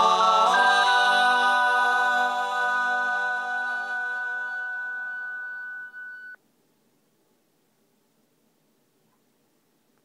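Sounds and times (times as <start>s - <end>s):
long held vocal note: 0.0s - 5.8s.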